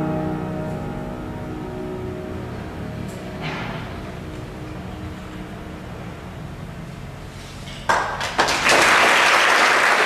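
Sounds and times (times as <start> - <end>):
audience applauding: 7.9 - 10.0.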